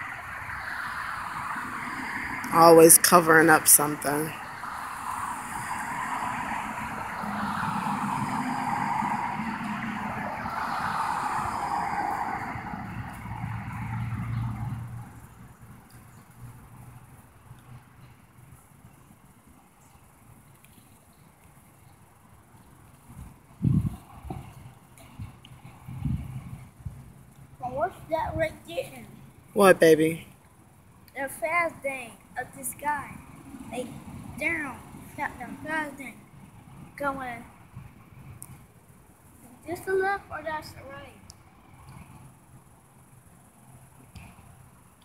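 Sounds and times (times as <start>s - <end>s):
road vehicle passing by: 0.0s - 18.9s, 22.2s - 30.3s, 31.8s - 45.0s.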